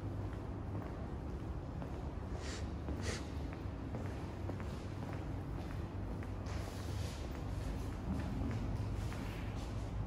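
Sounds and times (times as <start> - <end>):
low room hum: 0.0 - 10.0
short hissy breath-like sounds: 2.4 - 3.4.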